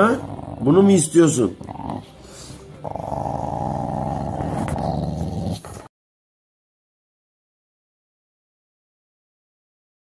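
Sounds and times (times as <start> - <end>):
dog growling: 0.0 - 5.9.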